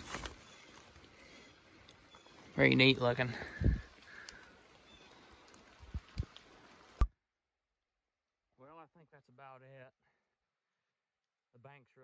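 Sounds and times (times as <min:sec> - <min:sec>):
steps on wet leaf litter: 0:00.0 - 0:01.3.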